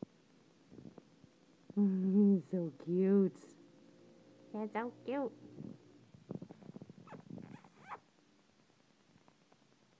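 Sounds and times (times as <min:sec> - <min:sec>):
kitten purring: 0:05.5 - 0:08.1.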